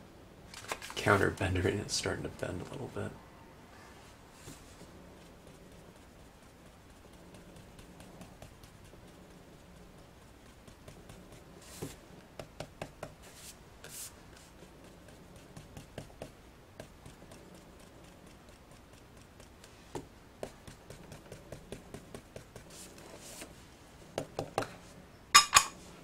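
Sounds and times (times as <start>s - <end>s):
tool rubbing on cardstock: 4.4s - 23.5s.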